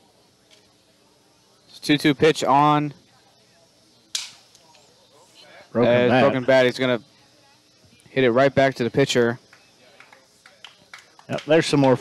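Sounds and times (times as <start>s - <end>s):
wooden bat cracking: 4.1s - 4.6s.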